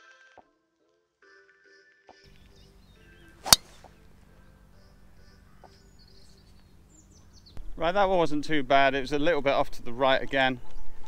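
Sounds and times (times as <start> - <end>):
golf driver striking ball: 3.4 - 4.0.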